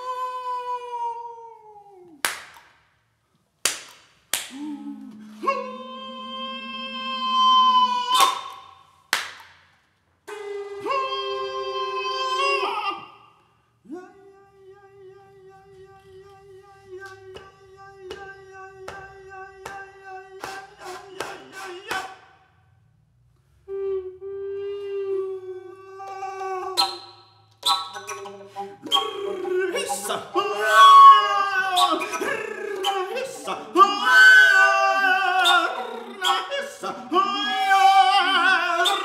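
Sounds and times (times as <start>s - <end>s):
sharp clap: 2.2s - 3.0s, 3.6s - 4.6s, 8.2s - 10.5s, 20.4s - 22.3s.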